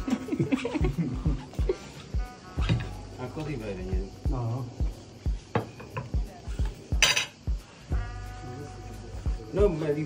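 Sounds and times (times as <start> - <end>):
background music with steady beat: 0.0 - 10.0
plates and cutlery clinking: 1.4 - 3.6, 5.5 - 6.2, 7.0 - 7.4.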